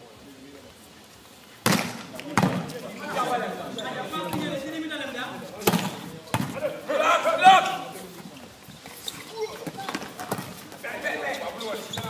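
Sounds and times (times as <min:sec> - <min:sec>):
volleyball being hit: 0:01.6 - 0:02.7, 0:05.6 - 0:06.6
players calling out: 0:01.9 - 0:12.0.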